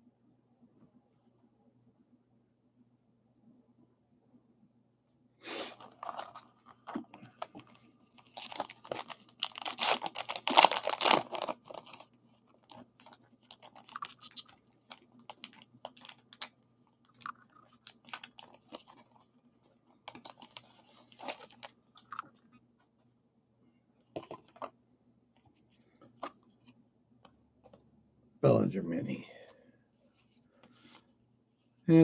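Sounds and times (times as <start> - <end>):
paper wrapper tearing and crinkling: 5.6 - 16.5, 17.1 - 19.1, 20.1 - 22.2.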